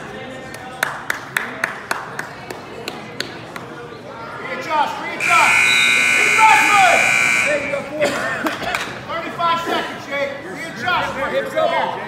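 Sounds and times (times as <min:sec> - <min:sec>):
people shouting: 0:05.2 - 0:07.8
scoreboard buzzer tone: 0:05.2 - 0:07.9.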